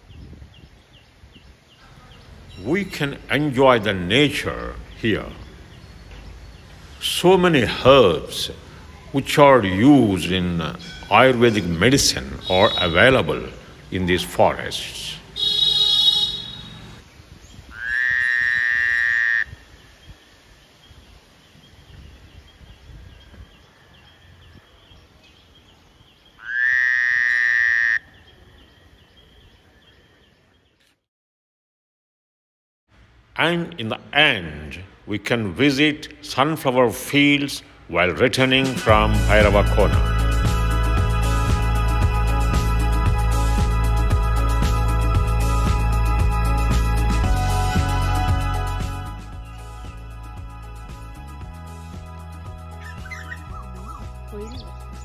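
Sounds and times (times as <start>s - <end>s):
loud buzzy animal call: 12.3s - 13.6s, 15.3s - 17.0s, 17.7s - 19.6s, 26.4s - 28.1s
faint repeated chirps: 15.4s - 16.9s
small animal chirping: 52.8s - 54.7s.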